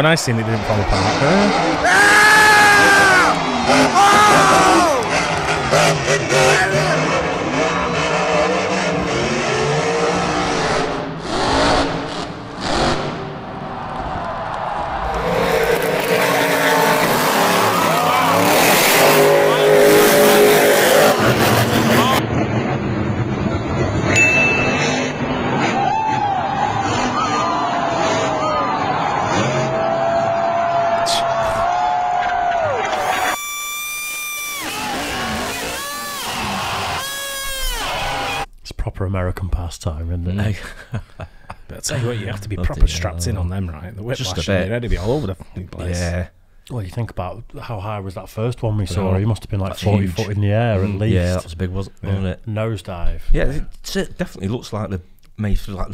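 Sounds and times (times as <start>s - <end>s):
arena crowd noise: 0.0s - 10.2s, 12.2s - 38.5s
truck engines revving: 0.0s - 38.5s
person talking: 41.7s - 46.3s, 48.8s - 52.5s.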